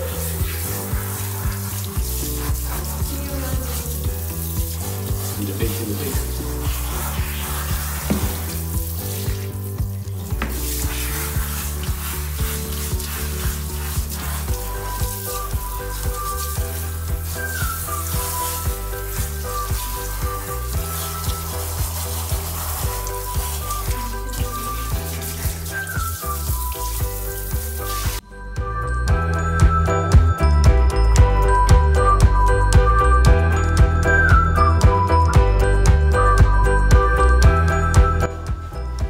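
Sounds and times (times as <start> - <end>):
shower head spraying water: 0.0 - 28.2.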